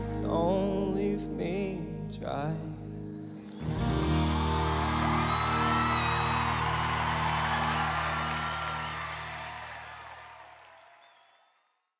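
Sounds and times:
audience cheering and whooping: 3.6 - 11.3.

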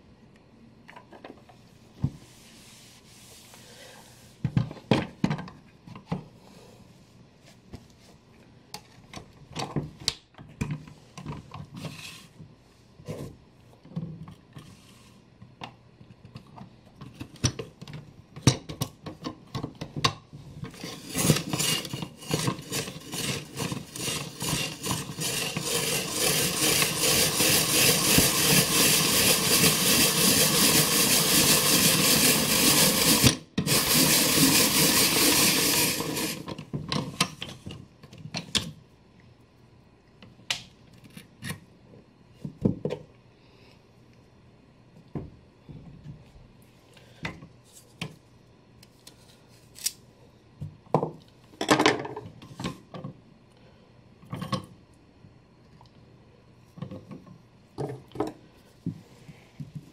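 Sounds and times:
spiralizer rasping scrape: 20.7 - 36.5.

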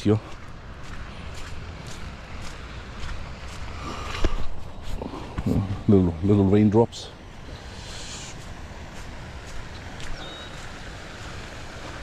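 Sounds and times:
footsteps on wet ground: 0.0 - 12.0.

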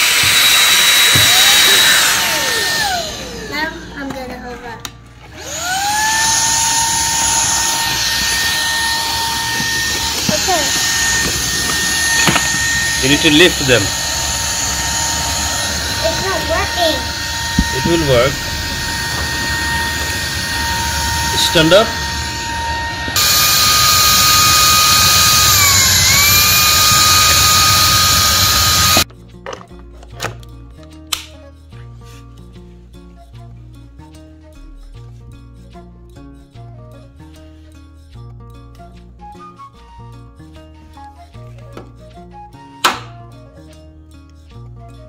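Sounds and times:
handheld vacuum cleaner whining: 0.0 - 4.2, 5.2 - 29.1
soft background music: 29.0 - 45.0.

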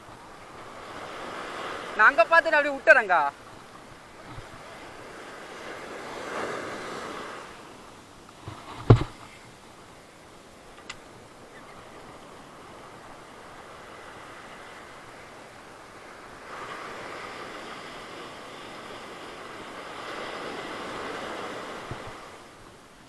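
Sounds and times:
surf washing on beach: 0.0 - 23.0.

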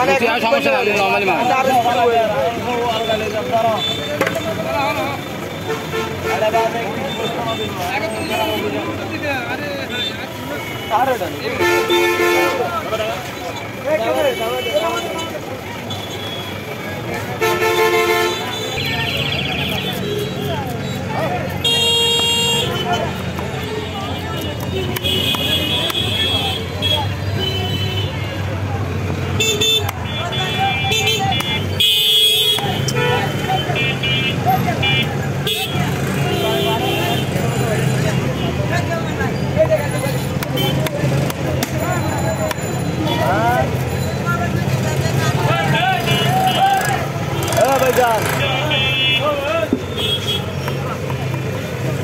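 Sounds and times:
traffic hum: 0.0 - 52.0
vehicle engines running: 0.0 - 52.0
voices: 0.0 - 52.0.

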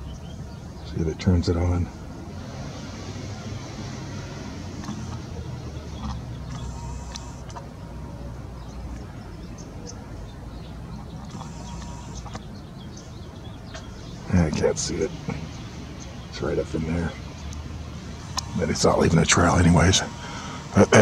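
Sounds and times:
faint clicks: 4.8 - 5.3.

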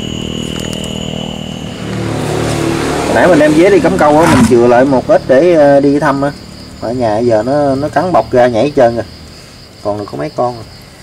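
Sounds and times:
high whine: 0.0 - 7.8
low engine hum: 0.0 - 8.5.

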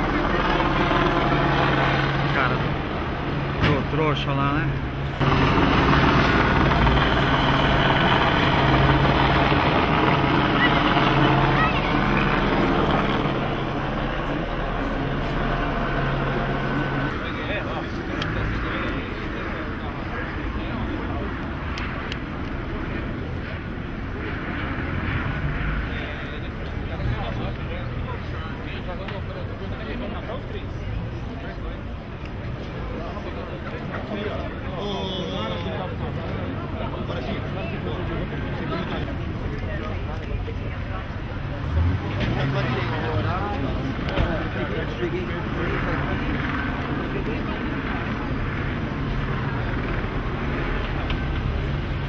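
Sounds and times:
distant voices murmuring: 0.0 - 52.0
engine drone: 0.0 - 52.0
street noise: 0.0 - 52.0.

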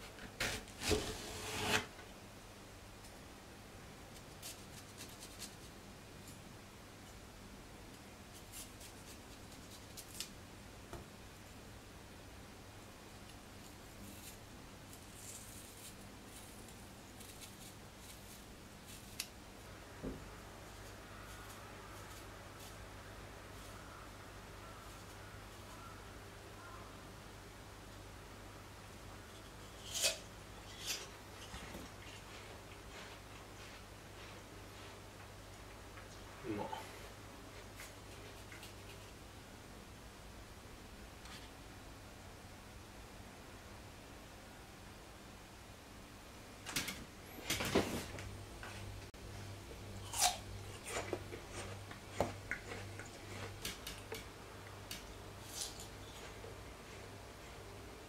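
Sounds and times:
faint low hum: 0.0 - 58.0
apple crunching: 49.9 - 54.2.

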